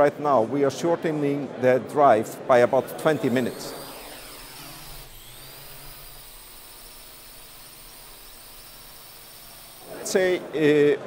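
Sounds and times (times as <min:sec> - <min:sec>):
drone propellers buzzing: 0:02.6 - 0:09.9.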